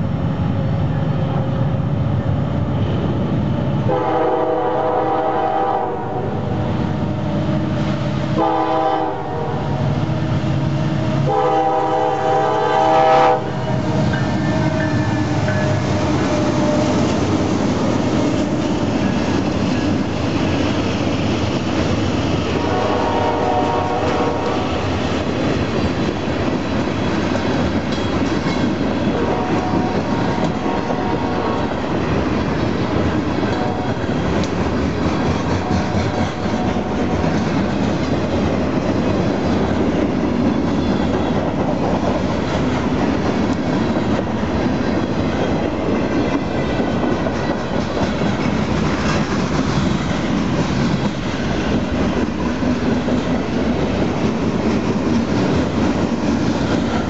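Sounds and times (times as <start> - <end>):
train wheels rolling on rail: 0.0 - 57.0.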